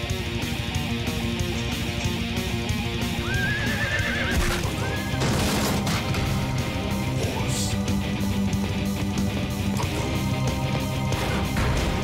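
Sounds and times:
heavy metal music: 0.0 - 12.0
horse whinnying: 3.1 - 5.6.

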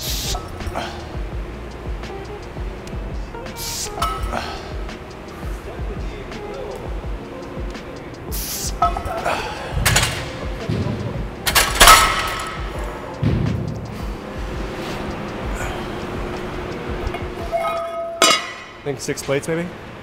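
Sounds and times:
background music with steady beat: 0.0 - 20.0
barbell plates clanking: 8.8 - 12.8, 17.1 - 18.8.

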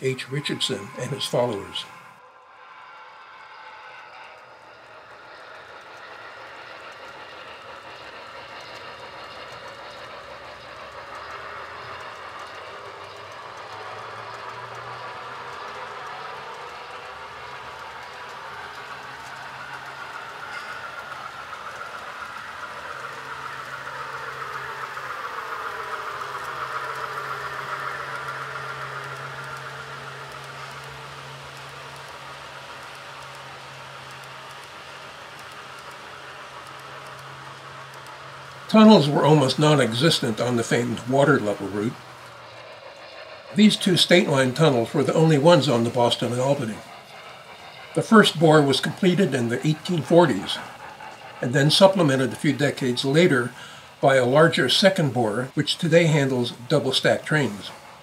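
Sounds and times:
model train wheels rolling: 0.0 - 58.0.

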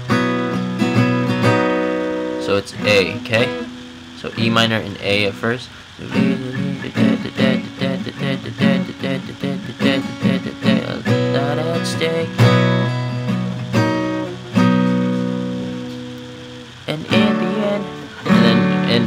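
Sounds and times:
acoustic guitar strummed: 0.0 - 19.0.

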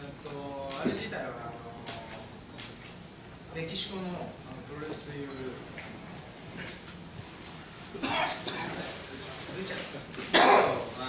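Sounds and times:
person coughing: 8.0 - 8.8, 10.3 - 10.8.

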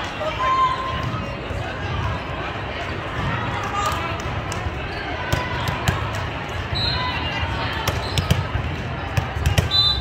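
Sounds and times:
murmur of crowd chatter: 0.0 - 10.0
volleyballs struck and bouncing: 0.9 - 6.7, 7.5 - 9.8.

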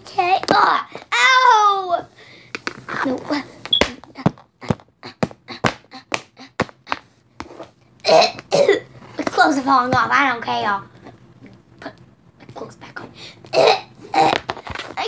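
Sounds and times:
child's voice: 0.0 - 2.2, 2.9 - 6.6, 9.2 - 10.9, 11.8 - 14.4
person coughing: 8.1 - 8.9, 13.5 - 14.4.

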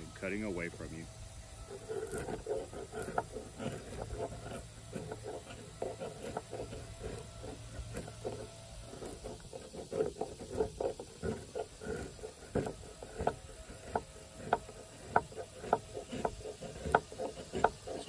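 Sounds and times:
knife scraping bark off branch: 1.6 - 18.0.

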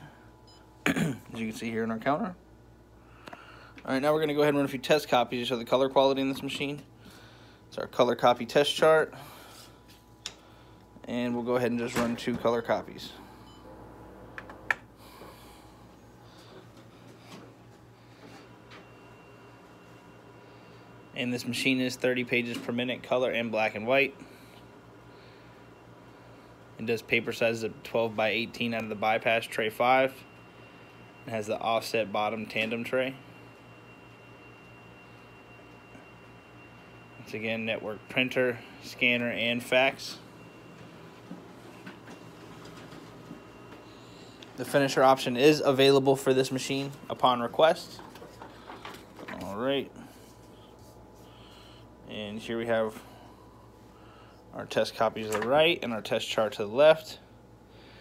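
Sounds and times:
copier humming: 0.0 - 58.0.

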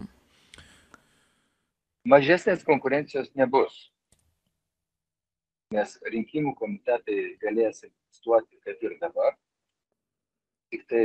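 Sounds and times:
person speaking: 0.0 - 0.9, 2.1 - 3.8, 5.7 - 9.3, 10.8 - 11.0.

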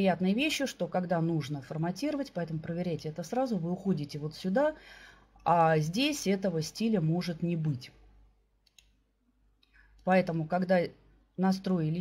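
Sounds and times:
faint clicks: 8.6 - 9.0.

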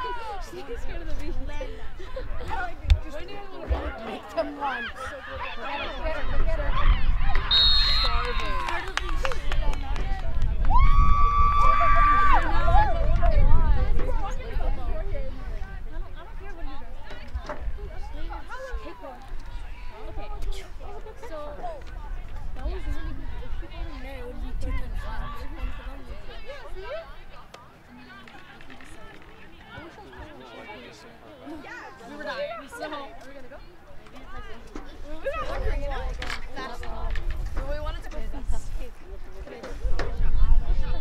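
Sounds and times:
people shouting and calling out: 0.0 - 37.3
wind rumble on microphone: 6.1 - 7.5, 8.8 - 18.2, 21.8 - 26.4, 39.8 - 41.0.

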